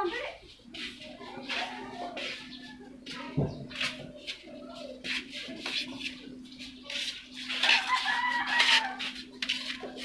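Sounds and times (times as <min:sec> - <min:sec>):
rooster crowing: 0:07.6 - 0:09.2.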